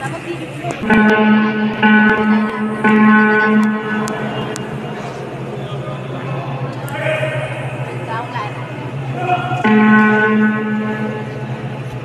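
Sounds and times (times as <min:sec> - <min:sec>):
low hum: 0:00.0 - 0:12.0
horn-like electronic tone: 0:00.8 - 0:05.0, 0:09.6 - 0:11.6.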